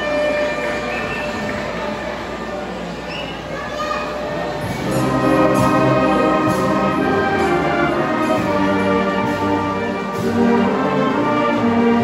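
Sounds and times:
wind band sustained chords: 0:00.0 - 0:03.0, 0:04.3 - 0:12.0.

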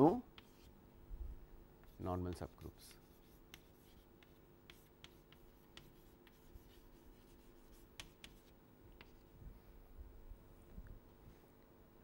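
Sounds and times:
chalk scratching on blackboard: 0:00.0 - 0:00.7, 0:01.9 - 0:09.2
low room hum: 0:00.0 - 0:12.0.

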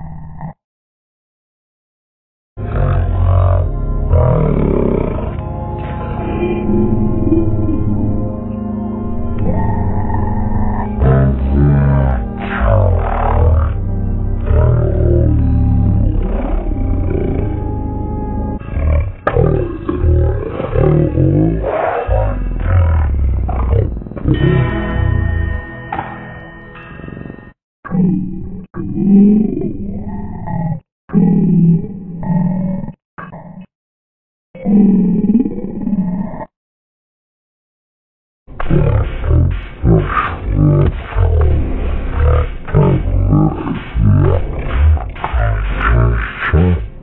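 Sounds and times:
slowed deep cartoon voice: 0:02.6 - 0:05.4, 0:09.4 - 0:13.8, 0:14.4 - 0:17.7, 0:18.6 - 0:25.5, 0:27.9 - 0:33.7, 0:38.6 - 0:47.0
slowed background music: 0:02.6 - 0:27.6, 0:38.5 - 0:47.0.

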